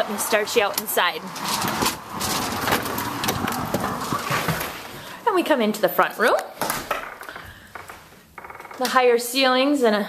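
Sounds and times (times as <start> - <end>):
footsteps: 0.0 - 5.2
door hardware knocks and clicks: 6.6 - 9.0.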